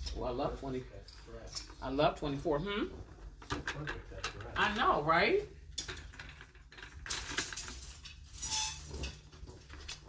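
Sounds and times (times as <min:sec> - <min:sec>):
rustling of things handled: 0:00.0 - 0:10.0.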